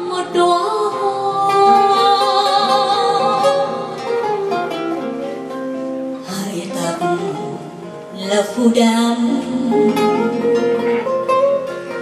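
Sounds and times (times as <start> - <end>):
woman singing into microphone: 0.0 - 4.8, 6.2 - 11.1
plucked acoustic guitar: 0.0 - 12.0.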